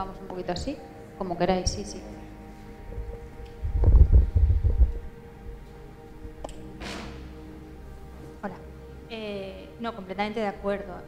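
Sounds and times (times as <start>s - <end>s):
microphone handling thuds: 3.6s - 5.0s.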